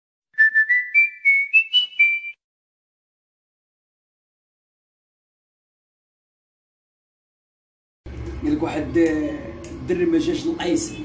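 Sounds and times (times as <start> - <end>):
whistle-like jingle: 0.4 - 2.4.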